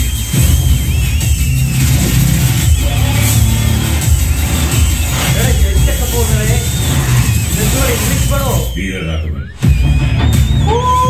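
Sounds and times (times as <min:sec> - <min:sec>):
electronic music with heavy bass: 0:00.0 - 0:11.0.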